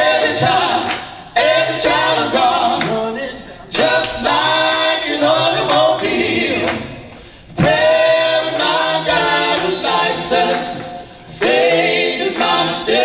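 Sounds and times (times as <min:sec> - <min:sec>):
male group singing gospel: 0:00.0 - 0:13.0.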